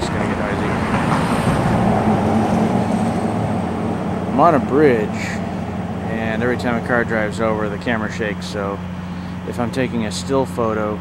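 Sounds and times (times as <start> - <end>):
car driving over bridge: 0.0 - 9.5.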